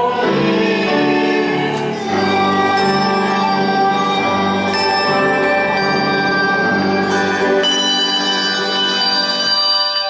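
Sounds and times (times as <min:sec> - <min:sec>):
handbell choir ringing chords: 0:00.0 - 0:10.0.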